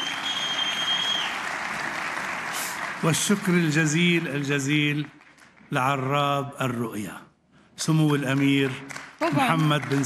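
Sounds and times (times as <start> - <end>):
high held whistle: 0.0 - 1.4
audience applauding: 0.0 - 6.2, 7.8 - 10.0.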